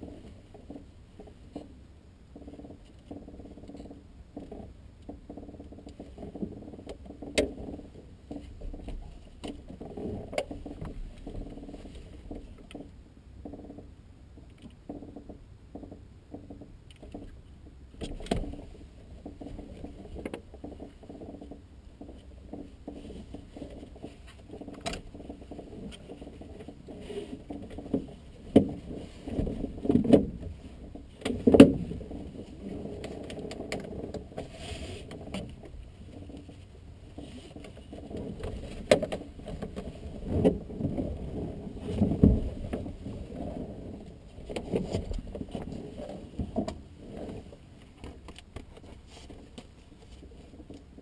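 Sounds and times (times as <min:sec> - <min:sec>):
rustling of straps and clothing: 0:02.4 - 0:13.9, 0:14.8 - 0:51.0.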